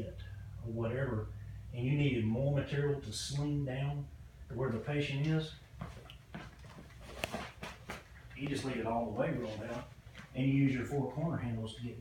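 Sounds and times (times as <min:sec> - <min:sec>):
footsteps on tiled floor: 0:05.8 - 0:08.8.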